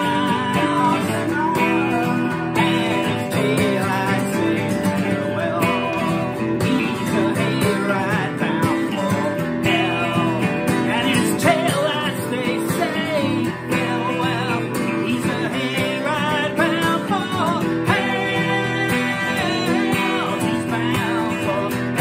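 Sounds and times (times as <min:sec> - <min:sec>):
acoustic guitar strumming: 0:00.0 - 0:22.0
clean electric guitar: 0:00.0 - 0:22.0
man singing: 0:00.0 - 0:22.0.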